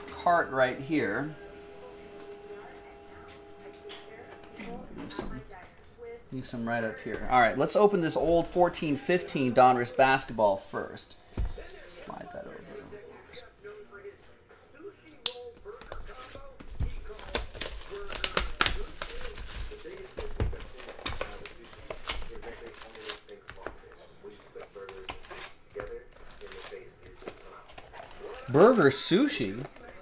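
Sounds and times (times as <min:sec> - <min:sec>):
rustling of cardboard and foil: 0:15.9 - 0:30.0.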